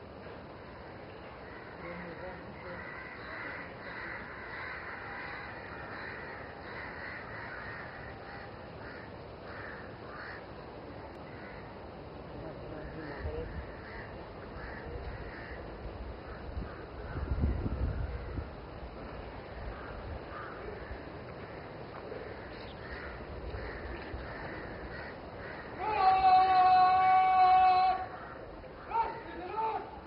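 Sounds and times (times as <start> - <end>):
birds calling: 0.0 - 30.0
outdoor background noise: 0.0 - 30.0.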